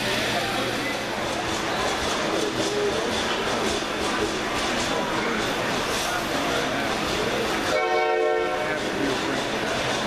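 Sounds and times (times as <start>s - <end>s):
busy exhibition hall noise: 0.0s - 10.0s
train horn blast: 7.7s - 8.8s.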